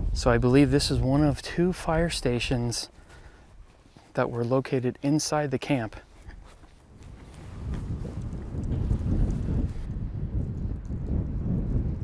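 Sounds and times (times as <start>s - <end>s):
wind buffeting microphone: 0.0s - 3.8s, 6.1s - 12.0s.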